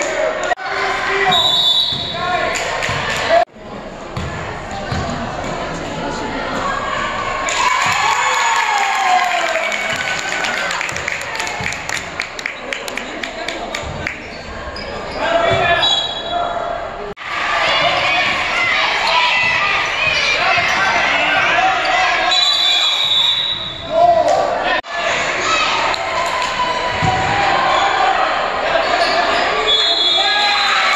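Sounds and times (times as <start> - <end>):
voices of players and spectators: 0.0 - 30.9.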